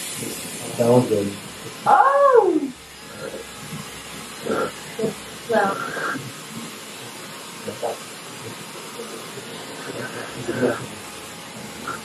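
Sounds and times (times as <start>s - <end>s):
hair dryer blowing air: 0.0s - 12.0s.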